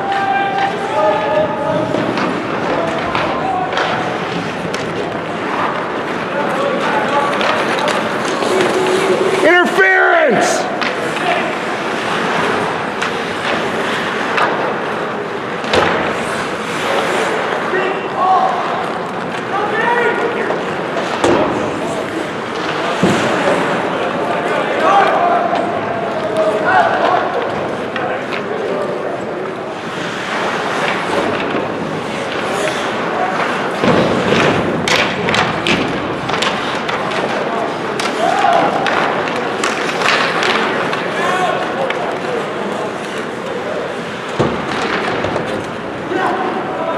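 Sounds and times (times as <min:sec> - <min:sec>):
players shouting: 0:00.0 - 0:14.2, 0:16.7 - 0:27.6, 0:37.2 - 0:46.9
skates scraping on ice: 0:00.0 - 0:46.9
sticks and puck clacking: 0:00.0 - 0:46.9.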